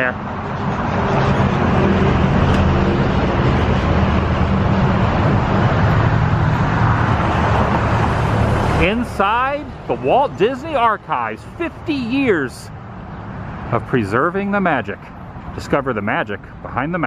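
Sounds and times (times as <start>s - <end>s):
road noise: 0.0s - 17.0s
vehicle engine humming: 0.0s - 17.0s.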